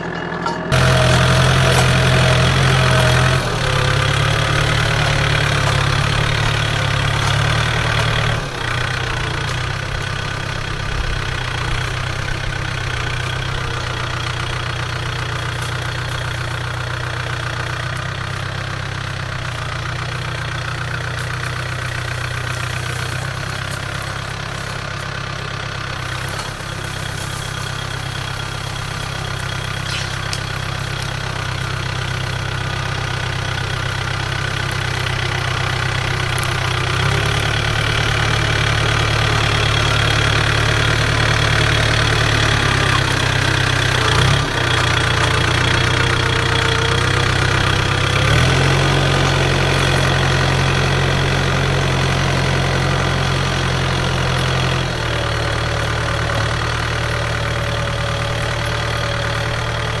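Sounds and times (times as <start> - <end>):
tractor diesel engine under load: 0.0 - 60.0.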